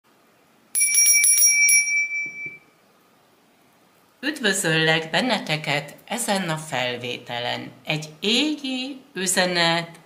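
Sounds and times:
small bell ringing: 0:00.8 - 0:02.7.

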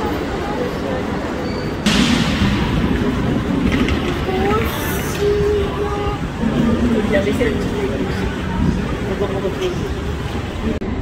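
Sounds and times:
train wheels rumbling on rail: 0:00.0 - 0:11.0.

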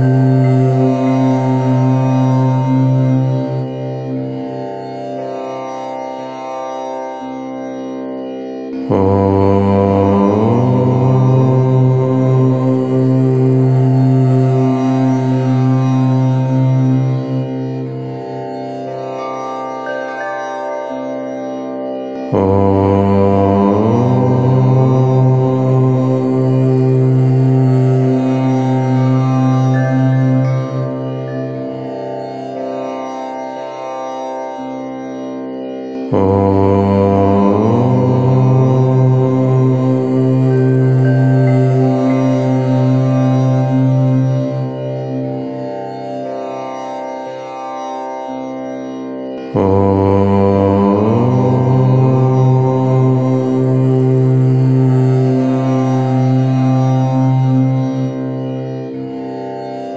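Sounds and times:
deep voice chanting om: 0:00.0 - 0:05.4, 0:08.7 - 0:18.5, 0:22.2 - 0:32.7, 0:35.9 - 0:46.0, 0:49.4 - 0:58.9.

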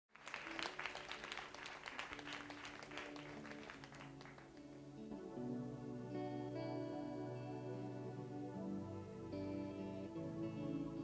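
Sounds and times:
audience applauding: 0:00.1 - 0:05.1.

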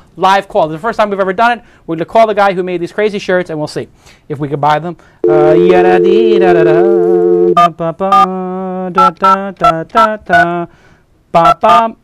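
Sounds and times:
man humming: 0:05.2 - 0:07.6
telephone dial tone: 0:05.2 - 0:07.6
man singing short syllables: 0:05.3 - 0:10.7.

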